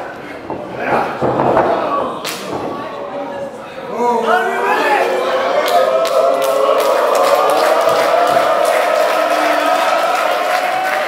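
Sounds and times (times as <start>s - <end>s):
murmur of crowd voices: 0.0s - 11.0s.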